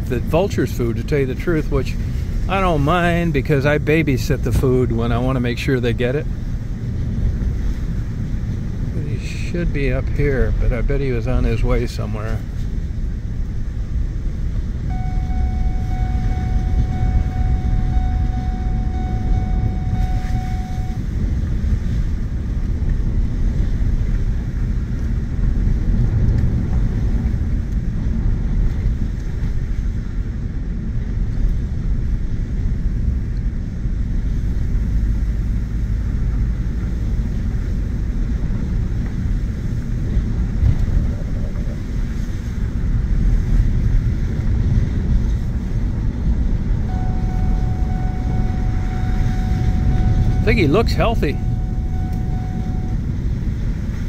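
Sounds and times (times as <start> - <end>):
pickup truck driving on dirt road: 0.0 - 54.0
faint thin steady tone: 14.9 - 21.1, 46.9 - 53.0.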